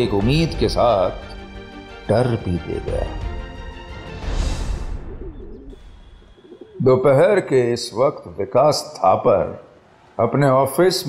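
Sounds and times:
man narrating: 0:00.0 - 0:01.2, 0:02.1 - 0:03.2, 0:06.6 - 0:09.6, 0:10.2 - 0:11.0
pigeon cooing: 0:05.0 - 0:07.4.

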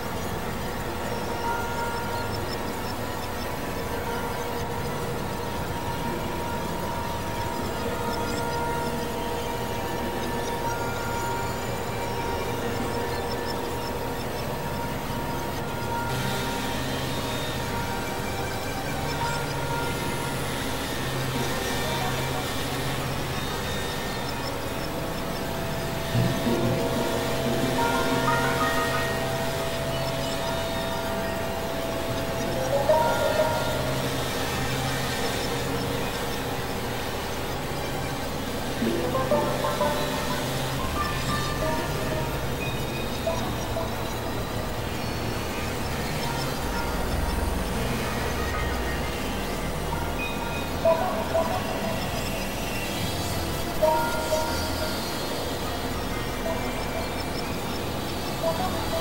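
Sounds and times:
low pulsing hum: 0:00.0 - 0:59.0
rising synth pitch sweeps: 0:00.0 - 0:59.0.

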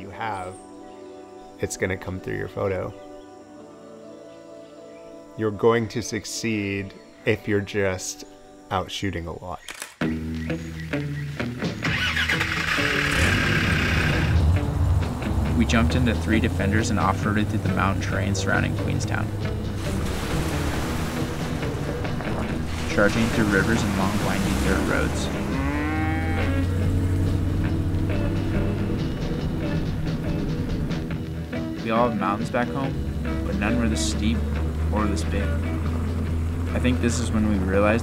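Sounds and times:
background music low notes: 0:00.0 - 0:38.0
vehicle engine starting and revving: 0:11.6 - 0:31.4, 0:32.9 - 0:38.0
cow mooing: 0:24.8 - 0:29.0.

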